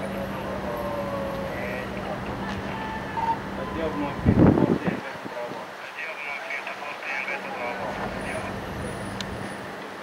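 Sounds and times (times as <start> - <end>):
faint voices: 0.0 - 9.2
vehicle engine rumbling: 0.0 - 10.0.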